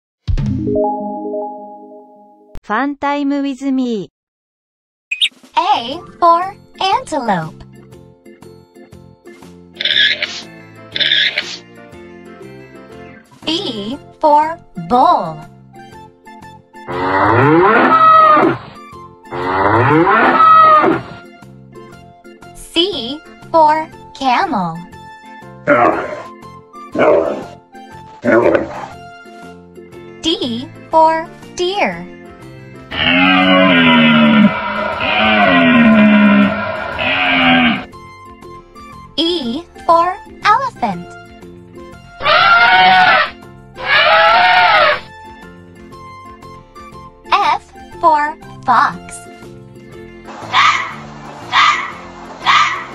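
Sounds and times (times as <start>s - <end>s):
children's background music: 0.4s - 4.1s, 5.2s - 52.9s
elephant trumpeting: 9.8s - 10.4s, 11.0s - 11.5s, 16.9s - 21.2s, 25.7s - 26.4s, 27.0s - 27.6s, 28.2s - 29.0s, 32.9s - 37.9s, 42.2s - 45.1s, 50.3s - 52.9s
bull mooing: 16.9s - 18.7s, 19.3s - 21.2s, 25.7s - 27.6s, 28.2s - 29.0s, 32.9s - 37.9s, 42.2s - 45.1s.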